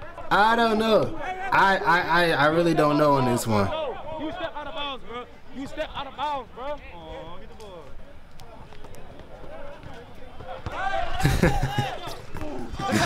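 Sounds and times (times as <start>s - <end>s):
men talking and calling out: 0.0s - 13.0s
basketball bounces: 8.4s - 10.9s.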